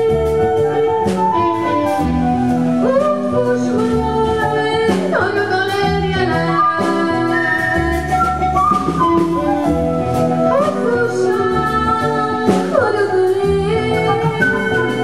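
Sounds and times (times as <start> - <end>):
woman singing into a microphone: 0.0 - 8.6, 10.3 - 15.0
bass guitar: 0.0 - 15.0
drum kit: 0.0 - 15.0.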